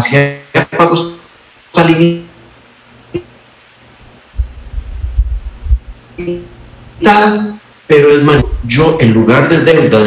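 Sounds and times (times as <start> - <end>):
microphone handling thuds: 4.4 - 6.0, 8.3 - 8.8.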